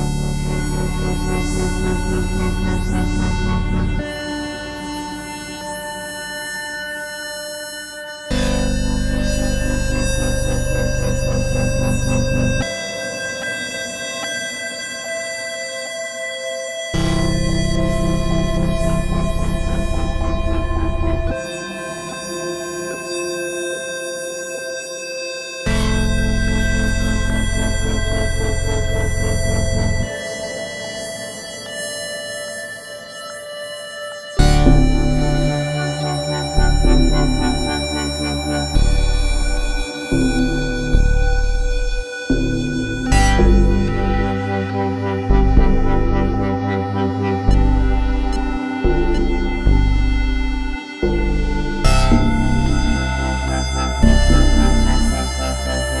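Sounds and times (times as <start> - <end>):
deep bass layer: 0.0 - 4.9, 8.3 - 12.7, 17.0 - 21.5, 25.7 - 30.2, 34.4 - 56.0
sustained synthesizer chords: 0.0 - 56.0.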